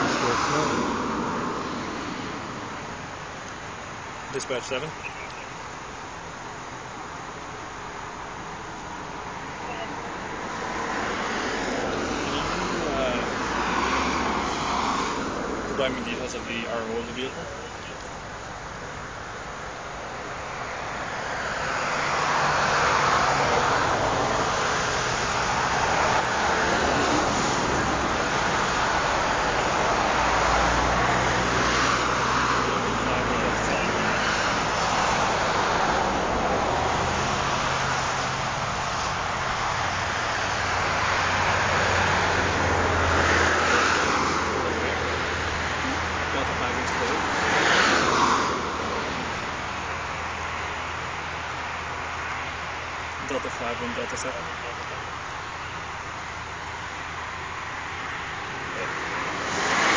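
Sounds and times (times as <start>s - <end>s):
cars passing: 0.0s - 59.9s.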